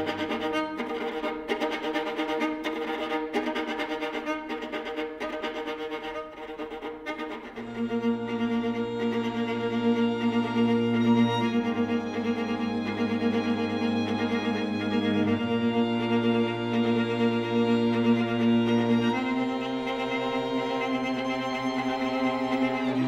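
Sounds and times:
string quartet playing: 0.0s - 23.0s.

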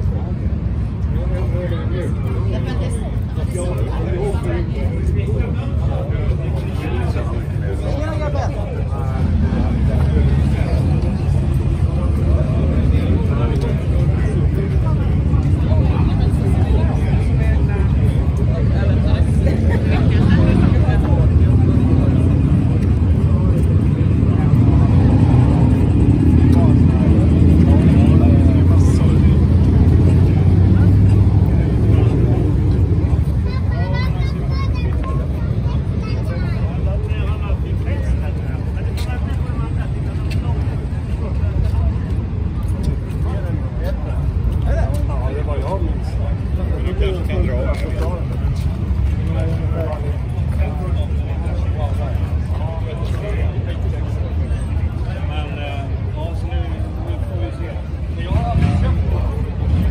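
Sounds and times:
people chattering: 0.0s - 59.9s
vehicle engine rumbling: 0.0s - 59.9s.

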